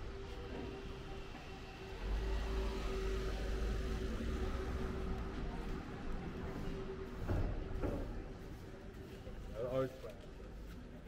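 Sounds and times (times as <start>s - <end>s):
street low rumble: 0.0s - 11.0s.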